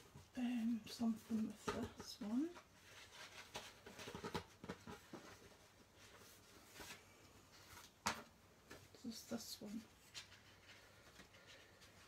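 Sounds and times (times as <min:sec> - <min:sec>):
paper rustling and tapping: 0:01.3 - 0:07.0.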